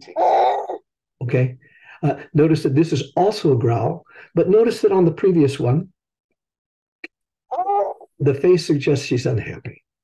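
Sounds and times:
infant vocalizing: 0.0 - 0.8, 7.5 - 8.1.

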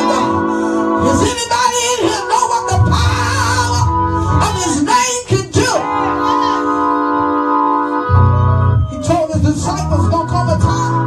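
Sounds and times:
electric organ: 0.0 - 11.0
low bass note: 5.8 - 11.0.

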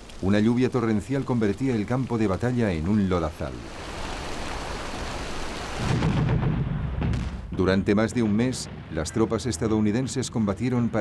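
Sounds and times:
heavy rain hissing: 0.0 - 6.3.

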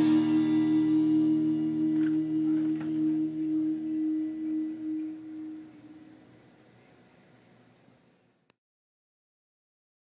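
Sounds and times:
electric guitars and bass chord ringing: 0.0 - 6.5.

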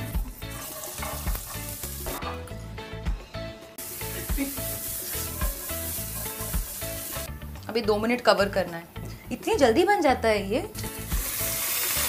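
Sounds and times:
vegetables sizzling in hot oil: 0.0 - 2.2, 3.8 - 7.3, 10.8 - 12.0.

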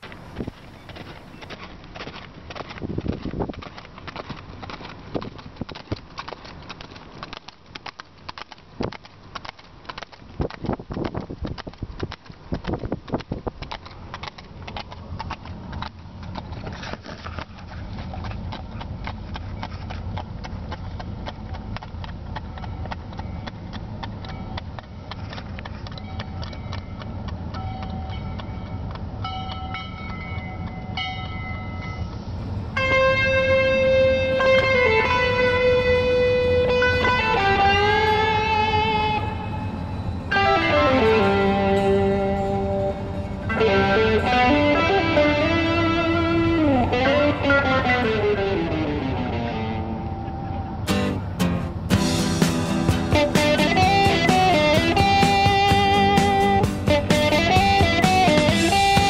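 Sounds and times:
horse hooves trotting on asphalt: 0.0 - 49.7, 50.9 - 59.0
car road and engine rumble: 0.0 - 59.0.

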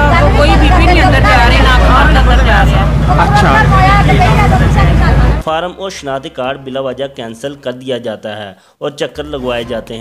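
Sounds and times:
loud low rumble: 0.0 - 5.4
woman talking: 0.0 - 5.4.

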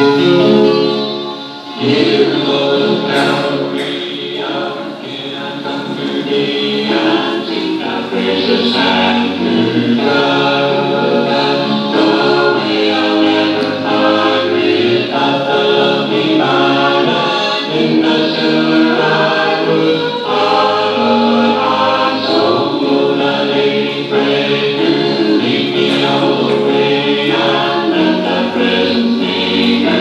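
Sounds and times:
choir singing a hymn: 0.0 - 30.0.

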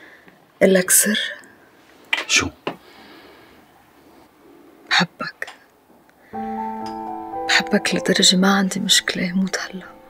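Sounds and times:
person speaking: 6.4 - 10.0.

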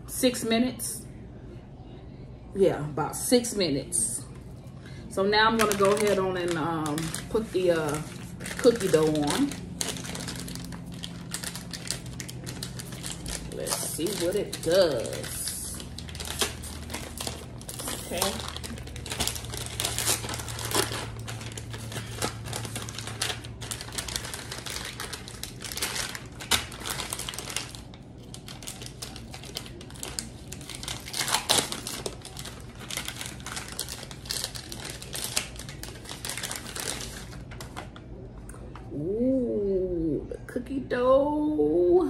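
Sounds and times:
plastic wrapper crinkling: 5.4 - 38.1.

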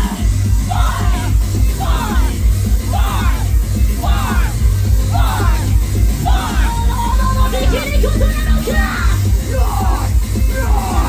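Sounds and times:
loud bass-heavy live music: 0.0 - 11.0.

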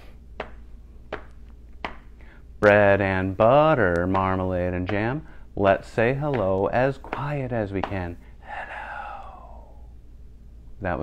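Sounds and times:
hands patting thighs: 0.0 - 9.4
faint low room hum: 0.0 - 11.0.

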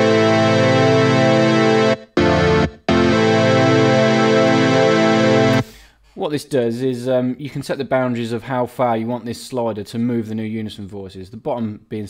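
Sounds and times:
synthesizer chord pad: 0.0 - 5.6.

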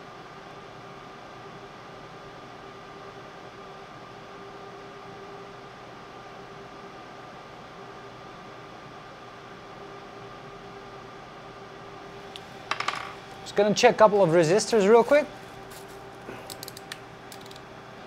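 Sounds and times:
fans and equipment humming: 0.0 - 18.0.

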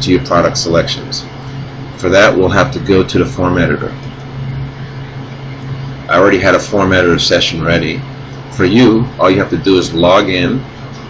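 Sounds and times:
low hum: 0.0 - 11.0.

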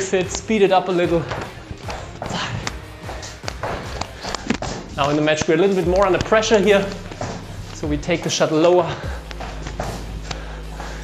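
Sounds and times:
shoe footsteps on wooden floor: 0.0 - 10.5.

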